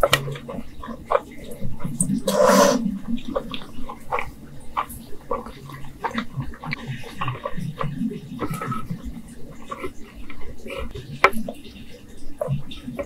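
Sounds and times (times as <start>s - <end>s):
wet chewing with lip clicks: 0.0s - 13.0s
noodle slurping: 0.6s - 13.0s.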